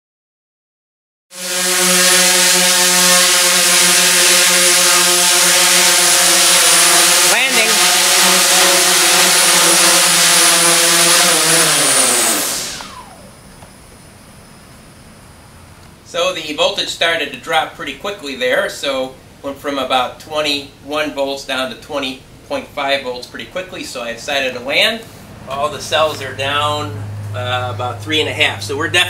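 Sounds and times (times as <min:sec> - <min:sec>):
drone motors humming: 0:01.4 - 0:15.8.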